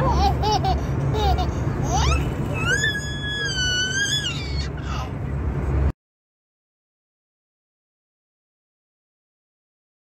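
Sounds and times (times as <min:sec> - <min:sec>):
baby squealing: 0:00.0 - 0:05.1
airliner cabin drone: 0:00.0 - 0:06.0.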